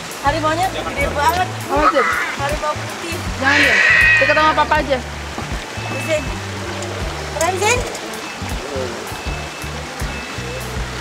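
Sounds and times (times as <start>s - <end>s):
background music with low bass: 0.0s - 11.0s
even rushing noise: 0.4s - 5.8s.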